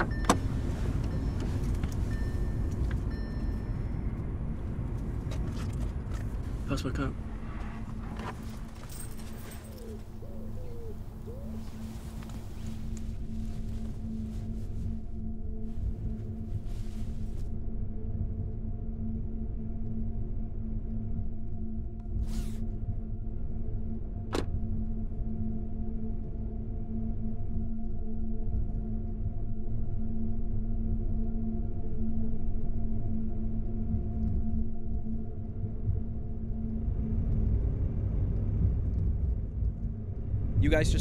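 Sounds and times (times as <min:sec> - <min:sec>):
dark horror drone: 0:00.0 - 0:41.0.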